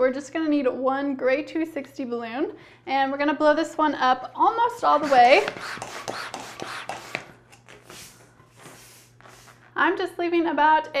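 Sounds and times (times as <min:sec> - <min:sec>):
balloon being inflated: 0:04.8 - 0:09.8
rubbing on balloon: 0:04.8 - 0:09.8.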